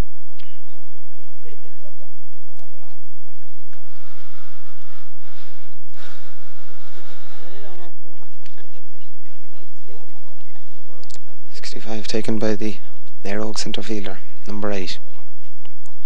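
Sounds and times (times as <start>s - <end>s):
faint outdoor voices: 0.0s - 15.8s
steady hiss: 2.6s - 7.8s.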